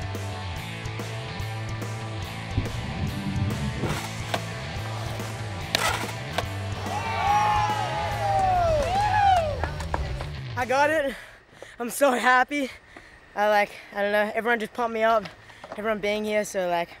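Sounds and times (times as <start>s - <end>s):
background music: 0.0s - 10.9s
skateboard rolling on concrete: 0.1s - 11.0s
skateboard clack: 5.1s - 7.0s
people yelling and cheering: 6.7s - 10.2s.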